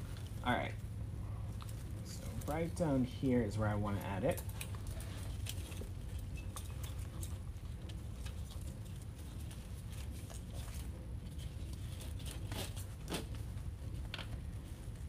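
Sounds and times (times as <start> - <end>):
steady low hum: 0.0 - 15.0
rustling of ribbon and greenery: 3.9 - 15.0.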